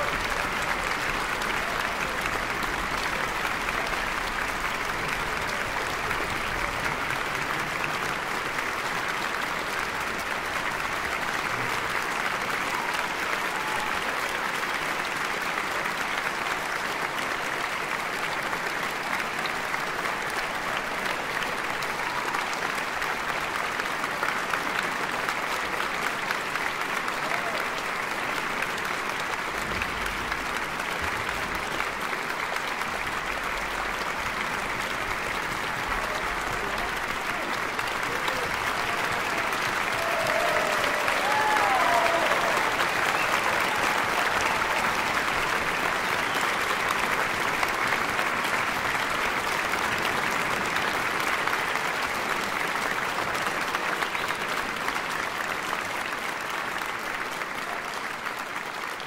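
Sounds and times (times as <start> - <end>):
audience applauding: 0.0 - 59.0.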